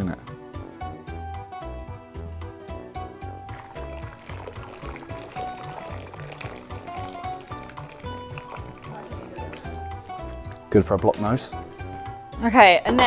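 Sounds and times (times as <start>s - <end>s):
water pouring through a colander: 3.5s - 10.7s.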